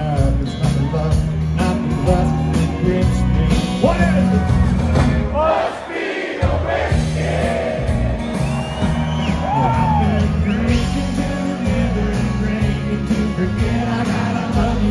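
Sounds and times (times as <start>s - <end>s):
live country band playing: 0.0s - 5.4s, 6.4s - 14.9s
person singing: 9.6s - 14.9s.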